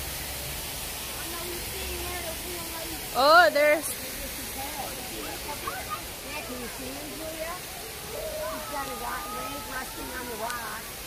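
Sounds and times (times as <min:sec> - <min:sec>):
faint chatter of voices: 0:01.1 - 0:11.0.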